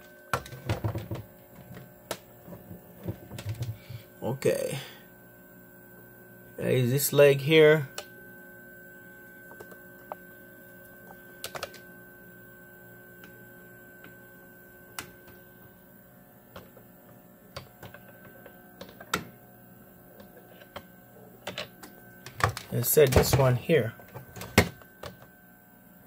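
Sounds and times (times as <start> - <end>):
electrical hum: 0.0 - 26.0.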